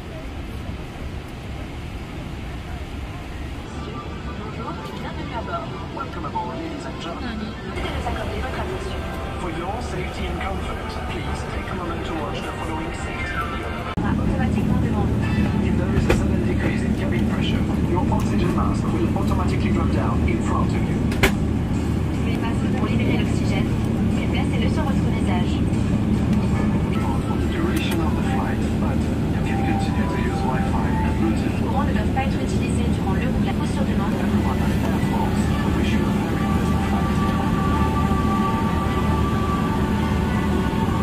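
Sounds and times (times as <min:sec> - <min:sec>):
jet airliner cabin drone: 0:00.0 - 0:41.0
faint narration voice: 0:02.4 - 0:21.2, 0:22.0 - 0:41.0.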